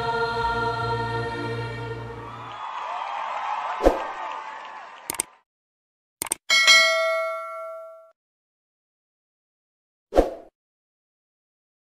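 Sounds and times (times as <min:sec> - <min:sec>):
bright bell ding: 0:06.5 - 0:08.2.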